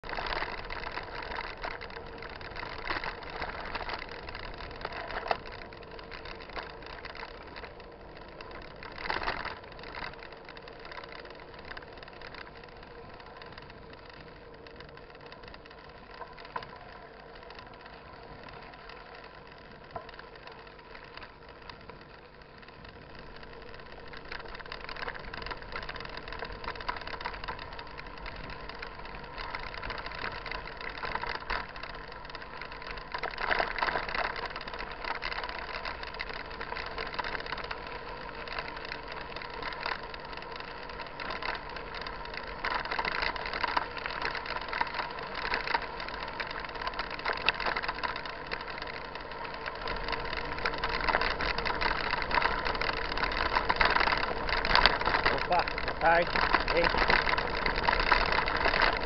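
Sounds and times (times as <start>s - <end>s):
bike frame rattling: 0.0s - 59.0s
tyres crunching on gravel: 0.0s - 59.0s.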